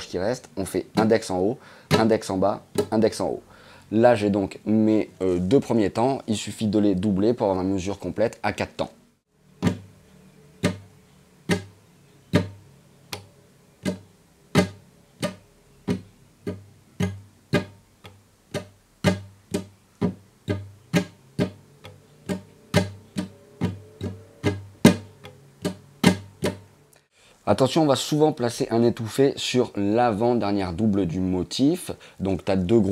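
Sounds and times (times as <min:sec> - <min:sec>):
nylon-string guitar strumming: 0:00.8 - 0:03.2, 0:09.4 - 0:26.9.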